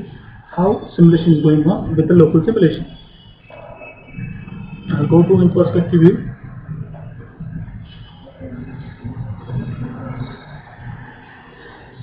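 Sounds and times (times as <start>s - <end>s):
man talking: 0.0s - 2.9s, 4.9s - 6.3s
faint high whine: 0.0s - 12.0s.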